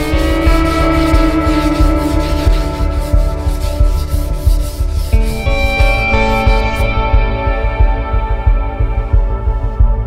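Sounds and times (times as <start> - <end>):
sandpaper rasping on wood: 0.0 - 5.9
background music: 0.0 - 10.0.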